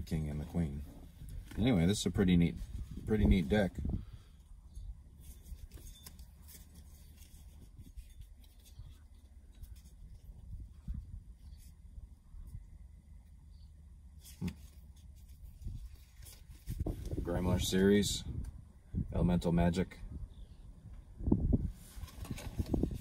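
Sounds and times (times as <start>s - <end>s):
wind noise on microphone: 0.8s - 5.8s, 7.2s - 12.8s, 15.2s - 23.0s
playing cards being fanned: 5.2s - 10.4s, 14.2s - 17.3s, 21.8s - 23.0s.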